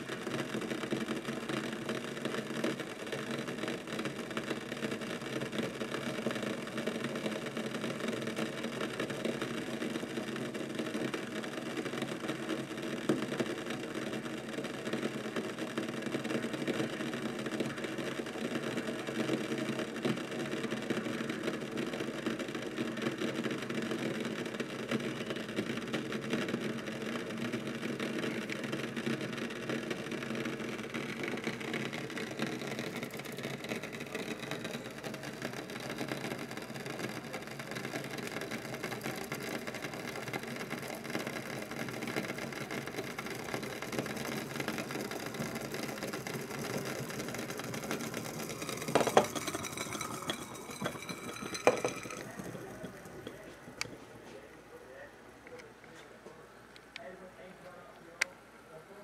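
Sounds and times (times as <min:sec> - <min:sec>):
water boiling and bubbling: 0:00.0 - 0:54.7.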